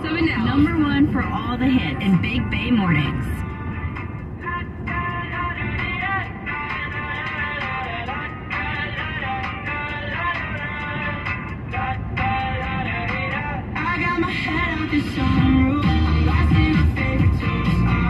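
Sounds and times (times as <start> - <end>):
car road and engine noise: 0.0 - 18.0
pop song on car radio: 0.0 - 18.0.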